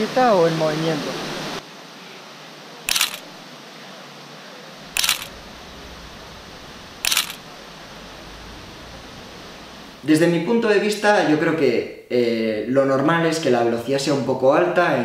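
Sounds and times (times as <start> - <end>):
fountain rushing: 0.0 - 11.5
low steady hiss: 0.0 - 15.0
camera shutter clicks: 2.9 - 3.3, 5.0 - 5.3, 7.0 - 7.4.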